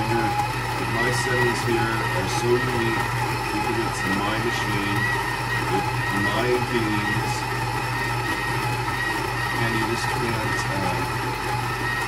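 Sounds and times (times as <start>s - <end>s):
coffee grinder motor grinding: 0.0s - 12.0s.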